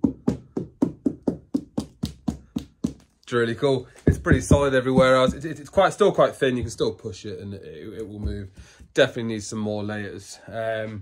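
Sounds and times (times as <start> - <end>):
hollow knocks on fibreglass: 0.0 - 3.0, 4.1 - 5.9.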